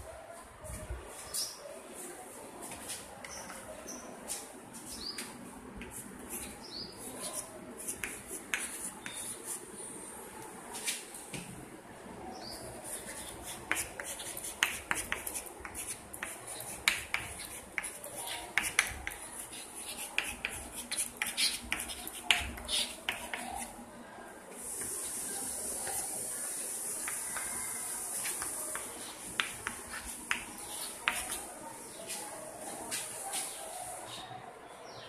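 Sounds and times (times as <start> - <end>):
chalk writing on a blackboard: 4.8 - 9.8, 12.6 - 23.8, 24.6 - 34.3
steady high hiss: 24.5 - 29.5.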